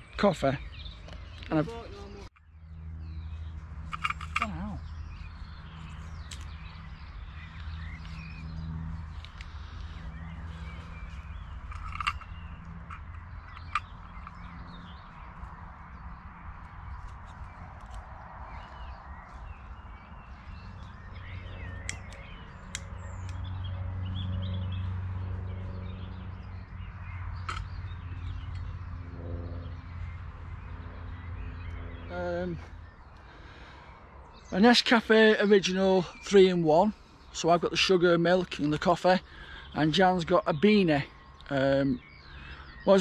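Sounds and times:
birds chirping: 0.0s - 43.0s.

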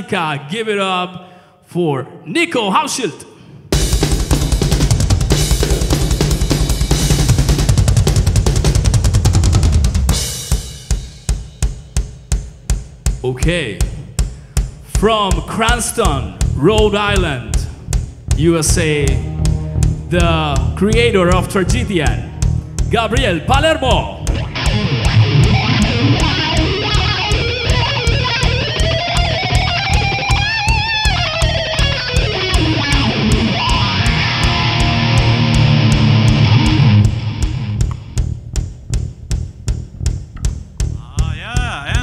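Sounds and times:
cymbal struck in steady beat: 3.7s - 9.0s, 9.6s - 42.0s
drum kit solo: 3.7s - 42.0s
distorted electric guitar: 3.8s - 10.2s, 18.7s - 39.1s
live heavy metal band: 3.8s - 11.1s, 18.4s - 38.3s
single low drum strokes: 16.0s - 42.0s.

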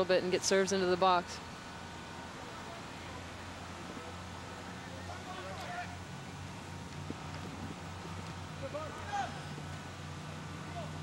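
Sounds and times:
distant shouts from players: 4.8s - 6.1s, 8.6s - 9.7s.

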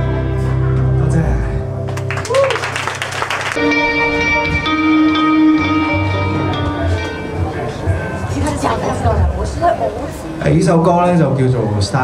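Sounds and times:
live band playing loud: 1.9s - 10.4s.

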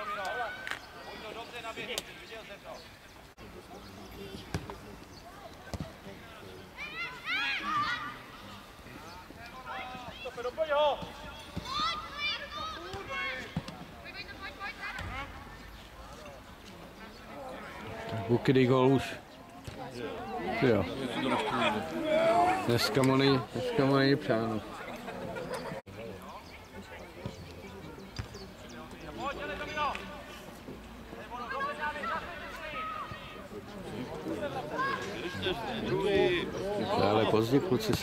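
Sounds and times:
voices shouting and calling: 0.0s - 38.0s
people shouting: 20.4s - 22.8s.

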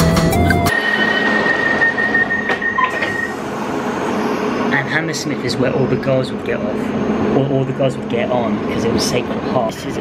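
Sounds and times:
train running noise: 0.4s - 10.0s
thin high whine: 0.5s - 9.4s.

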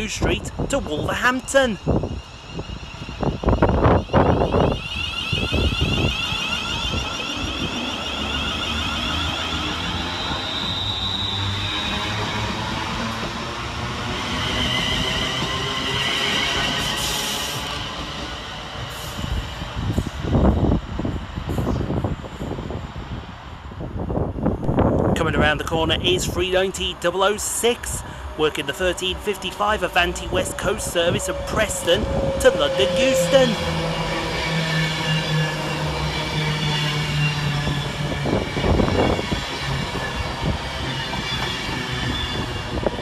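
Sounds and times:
train wheels rumbling on rails: 0.0s - 43.0s
traction motor whine: 30.5s - 43.0s.

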